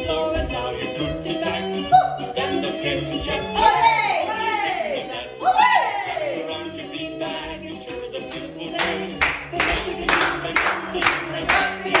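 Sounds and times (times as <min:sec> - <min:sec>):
recorded children's song: 0:00.0 - 0:12.0
people clapping in time: 0:07.9 - 0:12.0.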